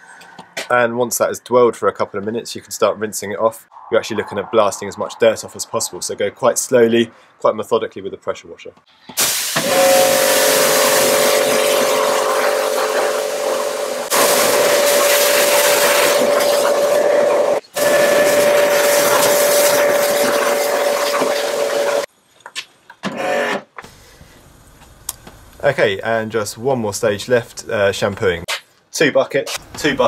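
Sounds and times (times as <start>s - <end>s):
pressure washer pump whine: 9.2s - 22.1s
water spraying hiss: 9.2s - 22.1s.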